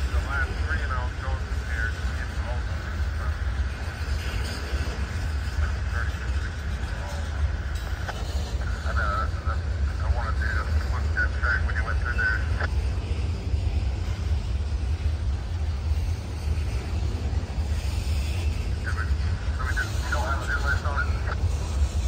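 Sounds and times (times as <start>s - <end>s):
train boxcars rumbling past: 0.0s - 22.0s.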